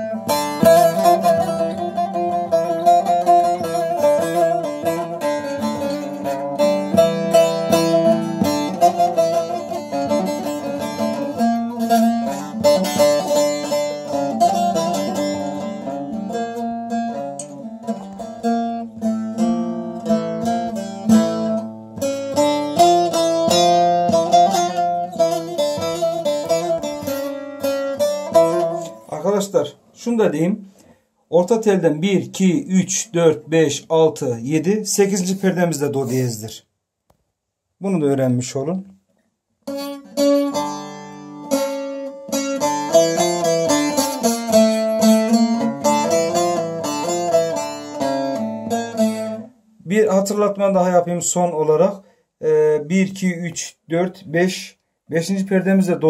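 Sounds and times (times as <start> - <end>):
long-necked lute melody: 0.0 - 33.4, 39.6 - 51.9.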